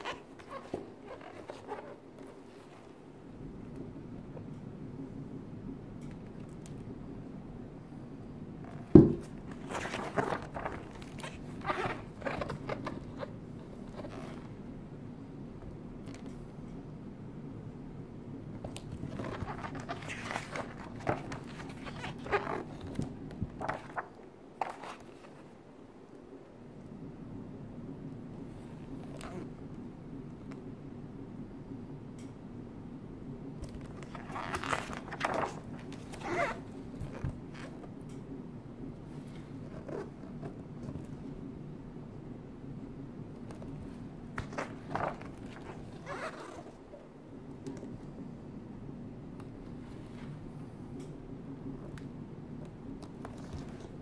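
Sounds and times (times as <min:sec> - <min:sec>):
book pages rustling: 0:00.0 - 0:03.0, 0:08.7 - 0:14.6, 0:18.6 - 0:25.5, 0:33.6 - 0:37.8, 0:43.4 - 0:46.8, 0:53.0 - 0:54.0.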